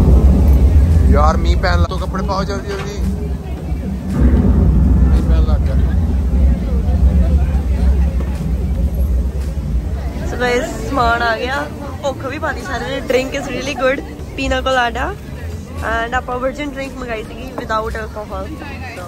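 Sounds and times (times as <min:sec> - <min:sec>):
loud deep rumble: 0:00.0 - 0:19.0
voices calling: 0:00.0 - 0:19.0.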